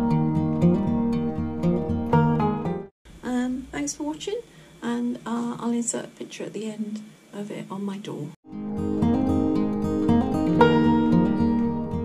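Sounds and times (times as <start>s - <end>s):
acoustic guitar music: 0.0s - 2.9s, 8.5s - 12.0s
woman speaking: 3.2s - 8.4s.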